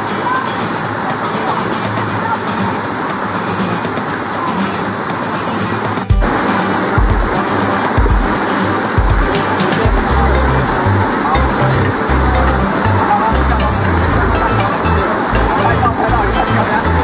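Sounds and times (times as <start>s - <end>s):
background music: 0.0s - 17.0s
stream rushing: 0.0s - 17.0s
heavy rhythmic bass line: 6.1s - 17.0s.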